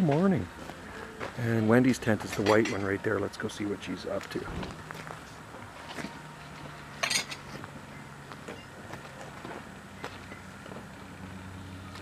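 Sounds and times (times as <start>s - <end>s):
metallic clink: 7.0s - 7.5s.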